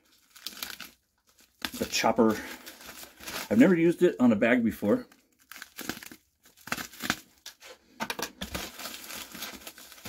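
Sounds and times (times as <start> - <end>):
paper bag crinkling and tearing: 0.0 - 4.0, 5.1 - 7.7, 8.4 - 10.0.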